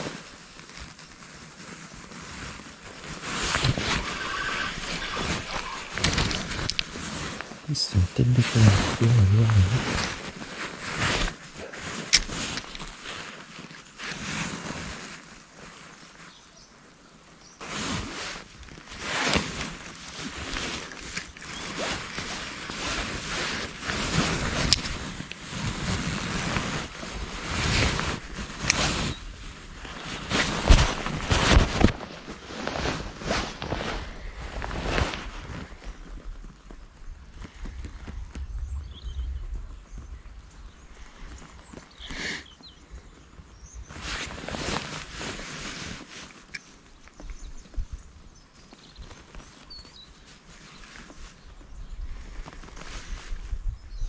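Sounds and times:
jacket sleeve rustling: 0:00.0 - 0:15.9, 0:17.6 - 0:35.8, 0:43.9 - 0:46.6
fishing rod clicks and knocks: 0:04.8 - 0:07.0, 0:12.1 - 0:12.9.

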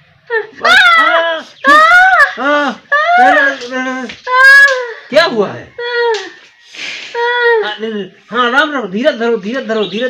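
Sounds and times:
woman wailing in pain: 0:00.3 - 0:05.1, 0:05.8 - 0:06.4, 0:07.2 - 0:07.8.

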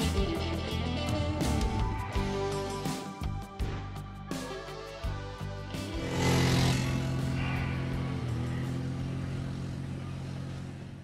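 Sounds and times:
quad bike engine running: 0:05.7 - 0:11.0.

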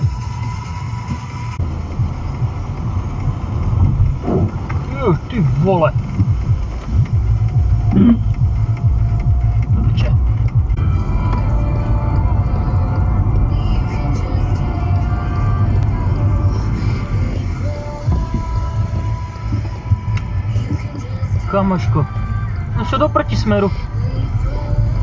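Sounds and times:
music: 0:00.0 - 0:25.0
road and engine hum: 0:00.0 - 0:25.0
voice: 0:04.2 - 0:06.0, 0:07.9 - 0:08.2, 0:09.7 - 0:10.2, 0:20.8 - 0:23.9.

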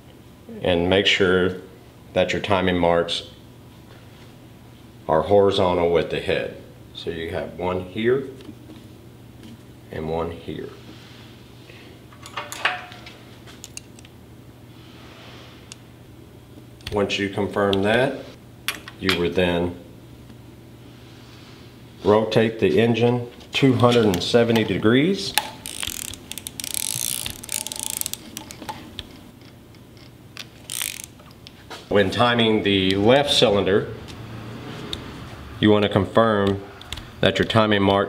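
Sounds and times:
steady low hum: 0:00.0 - 0:38.0
ratchet wrench clicking: 0:25.4 - 0:28.8, 0:30.6 - 0:31.2.

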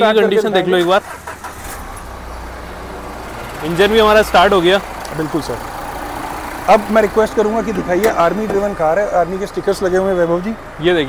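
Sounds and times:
diesel engine starting and idling: 0:00.5 - 0:11.0.

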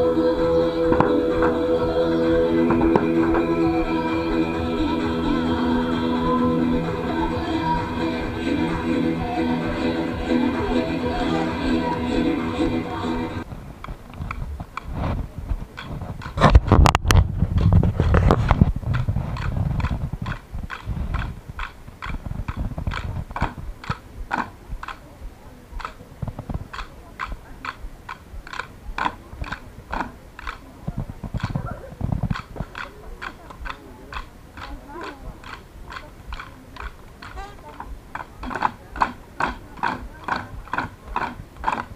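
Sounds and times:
rhythmic knocking: 0:00.0 - 0:13.4, 0:18.8 - 0:30.7, 0:31.3 - 0:41.9
low rumble: 0:00.0 - 0:21.6.

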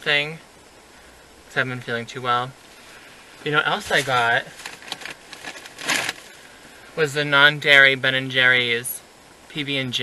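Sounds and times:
quiet car interior: 0:00.0 - 0:08.8
shopping bag rustling: 0:03.8 - 0:06.3.

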